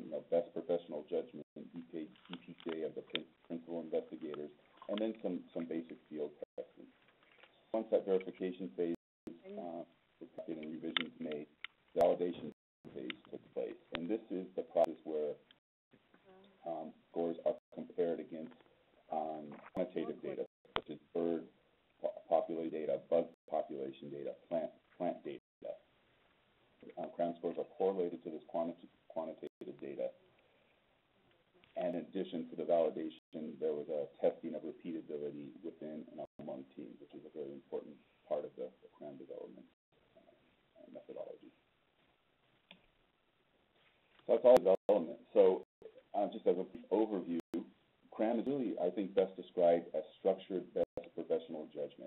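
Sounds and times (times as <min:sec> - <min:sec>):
man lecturing over phone line: 0:00.0 - 0:06.9, 0:07.8 - 0:09.0, 0:09.6 - 0:15.4, 0:16.6 - 0:25.8, 0:26.9 - 0:30.1, 0:31.8 - 0:39.8, 0:40.8 - 0:41.5, 0:44.3 - 0:52.0
man speaking: 0:00.0 - 0:06.9, 0:07.7 - 0:15.4, 0:16.6 - 0:25.8, 0:26.8 - 0:30.2, 0:31.8 - 0:39.8, 0:40.8 - 0:41.5, 0:44.3 - 0:52.0.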